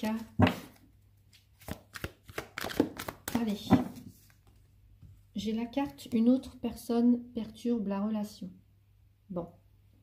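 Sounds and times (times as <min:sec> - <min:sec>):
playing cards clicking and snapping: 0:01.3 - 0:03.6.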